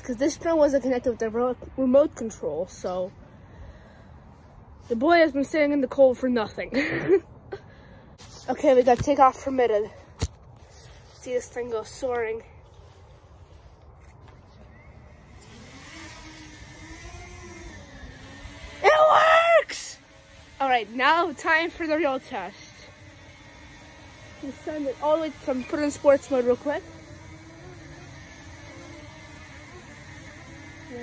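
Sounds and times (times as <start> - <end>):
drone motors and propellers humming: 9.2 - 31.0.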